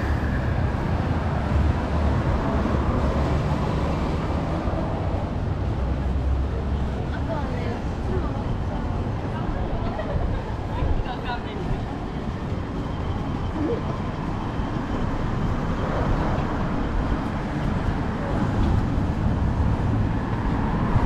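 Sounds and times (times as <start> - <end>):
road traffic rumble: 0.0 - 21.0
passers-by talking: 3.6 - 21.0.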